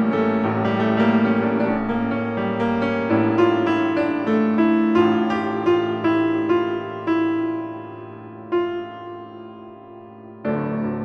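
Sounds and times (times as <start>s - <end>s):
piano music: 0.0s - 11.0s.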